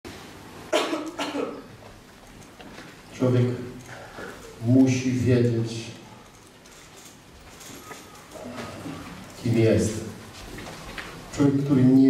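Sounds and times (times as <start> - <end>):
man coughing: 0.7 - 1.7.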